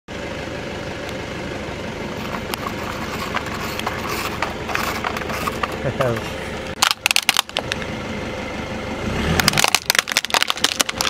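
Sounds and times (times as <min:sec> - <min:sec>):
car engine idling: 0:00.1 - 0:11.0.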